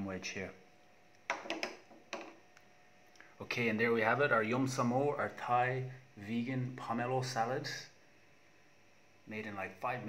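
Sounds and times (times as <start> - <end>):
kitchenware knocks: 1.3 - 2.4.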